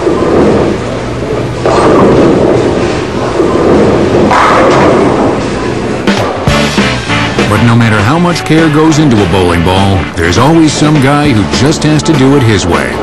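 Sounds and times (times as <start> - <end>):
bowling ball rolling on wooden lane: 0.0 - 6.4.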